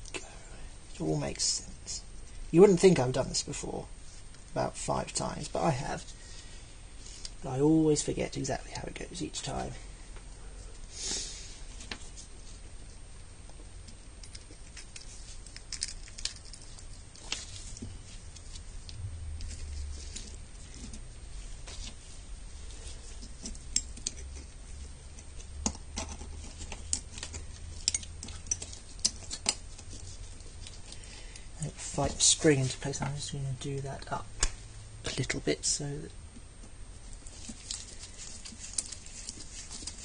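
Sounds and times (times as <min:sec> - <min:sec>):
small metal parts clicking: 0:14.2 - 0:17.3, 0:25.2 - 0:30.0.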